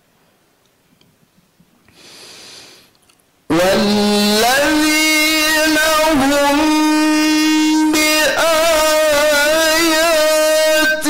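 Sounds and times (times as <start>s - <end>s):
man reciting melodically: 3.5s - 11.0s.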